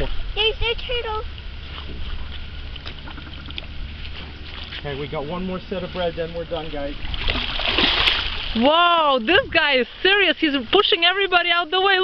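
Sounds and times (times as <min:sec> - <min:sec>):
faint outdoor hiss: 0:00.0 - 0:12.0
wind rumble on microphone: 0:09.0 - 0:10.2.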